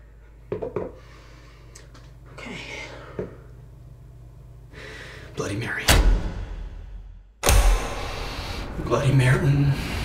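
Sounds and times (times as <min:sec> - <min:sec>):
low room hum: 0:00.0 - 0:10.0
breathy inhale: 0:01.0 - 0:01.8, 0:04.7 - 0:05.3, 0:07.8 - 0:08.8.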